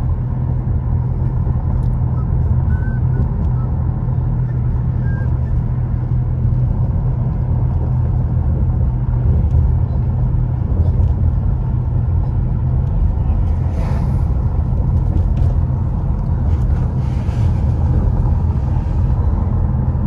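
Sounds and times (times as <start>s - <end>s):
car engine and tyre noise: 0.0s - 20.0s.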